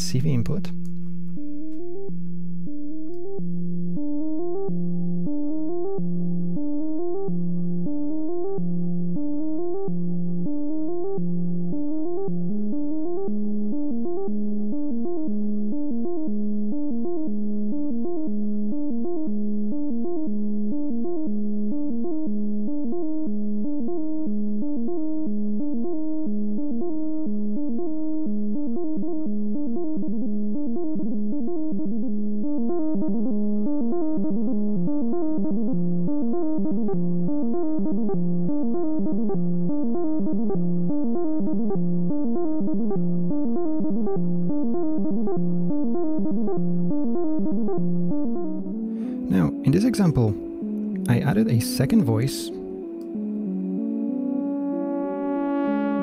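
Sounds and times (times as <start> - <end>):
synthesizer note sequence: 34.9 - 56.0.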